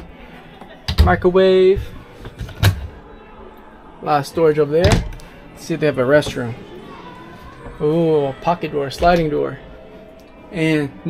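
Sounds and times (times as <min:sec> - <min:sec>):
cabinet latch click: 0:04.8 - 0:05.2.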